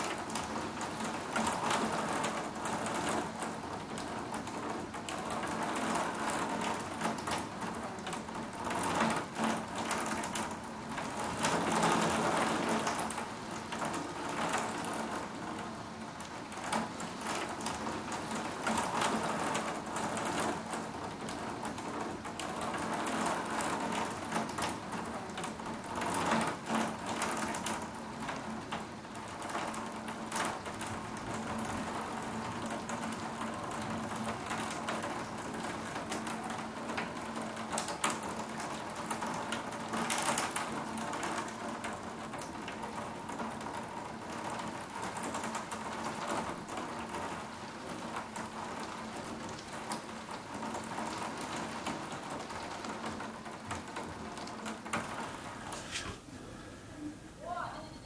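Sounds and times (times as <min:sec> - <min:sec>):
raindrops ticking on glass: 0:00.0 - 0:55.9
heavy rain: 0:00.0 - 0:58.0.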